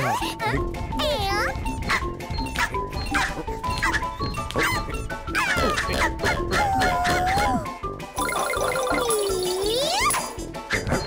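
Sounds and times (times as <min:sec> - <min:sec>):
cartoon background music: 0:00.0 - 0:11.0
cartoon character squeaks and yelps: 0:01.9 - 0:07.7, 0:08.8 - 0:11.0.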